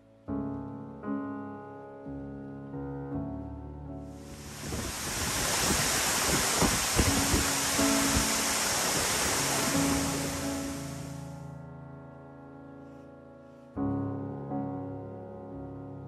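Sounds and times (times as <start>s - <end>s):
soft piano music: 0.0s - 16.0s
waterfall rushing: 4.2s - 11.2s.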